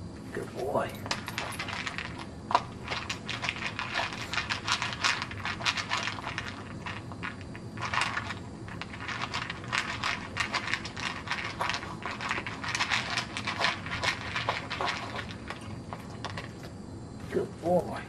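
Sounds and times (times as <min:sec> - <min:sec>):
dog crunching kibble: 0:00.4 - 0:16.8.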